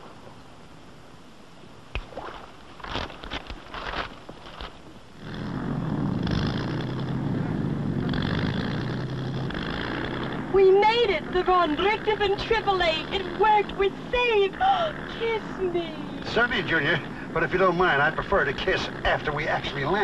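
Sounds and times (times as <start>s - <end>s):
propeller aircraft engine droning: 0.0s - 20.0s.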